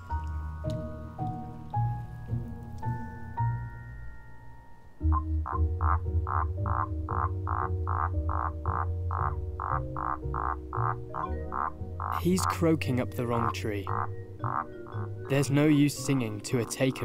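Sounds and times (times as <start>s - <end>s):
sustained low music chords: 0.0s - 17.0s
toad croaking: 5.0s - 17.0s.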